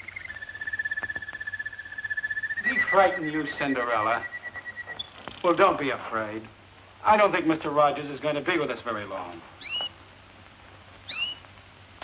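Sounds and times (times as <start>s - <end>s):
bird trilling: 0.0s - 5.4s, 9.6s - 10.0s, 11.0s - 11.5s.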